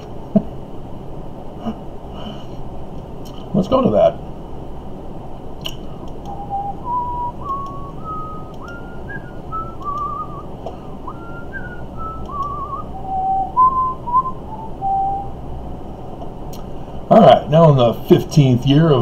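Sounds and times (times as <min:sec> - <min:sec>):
man whistling a tune: 0:06.2 - 0:15.4.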